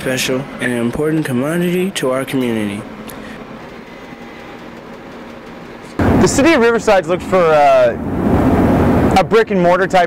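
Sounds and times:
faint hum: 5.6s - 9.7s
low background rumble: 6.0s - 9.6s.

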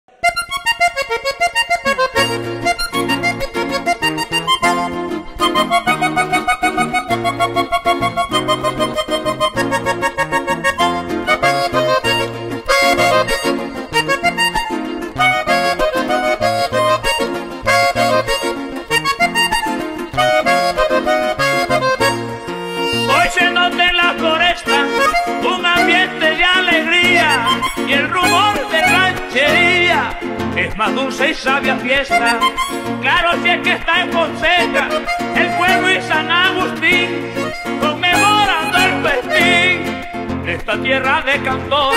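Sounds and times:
button accordion melody: 0.1s - 41.9s.

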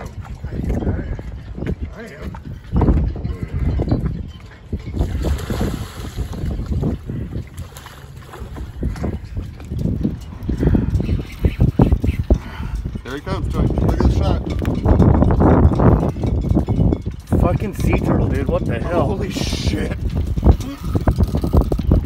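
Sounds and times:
wind rumble on microphone: 0.0s - 22.0s
water splashing: 4.9s - 9.8s.

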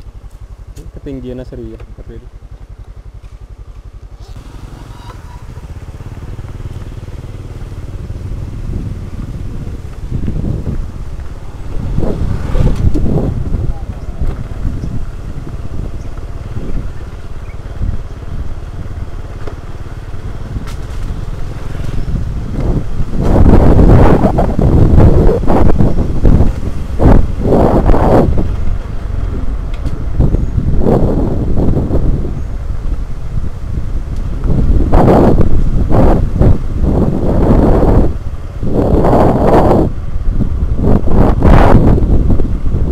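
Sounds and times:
motorcycle engine running: 0.0s - 42.9s
wind buffeting microphone: 0.0s - 42.9s.

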